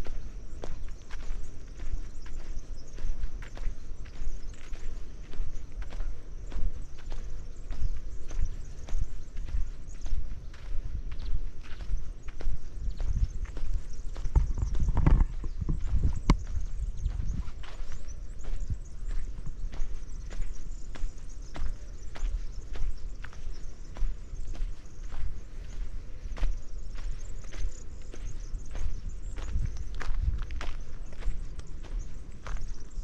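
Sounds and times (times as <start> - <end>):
footsteps on dirt path: 0.0 - 33.0.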